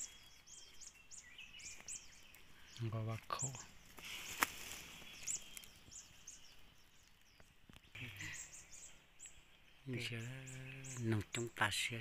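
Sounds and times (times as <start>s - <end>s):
birds chirping: 0.0s - 12.0s.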